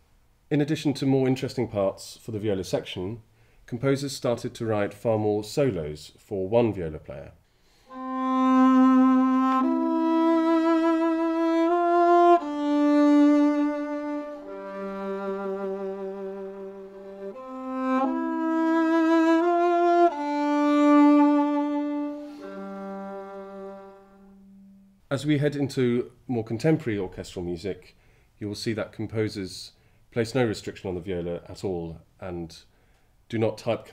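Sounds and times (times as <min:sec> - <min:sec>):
solo viola melody: 0:07.7 - 0:25.0.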